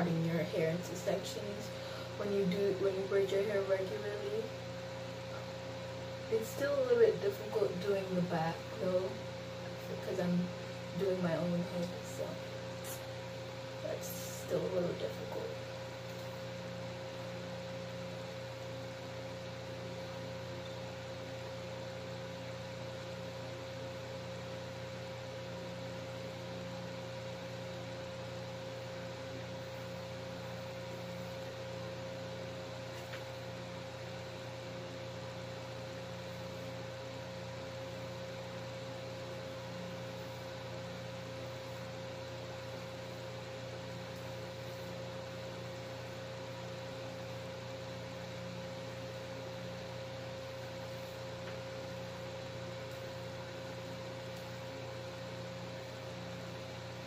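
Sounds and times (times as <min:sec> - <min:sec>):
electrical hum and hiss: 0:00.0 - 0:57.0.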